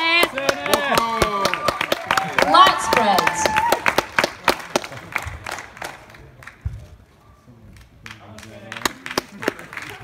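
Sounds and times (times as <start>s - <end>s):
audience clapping: 0.0s - 6.9s, 7.7s - 10.0s.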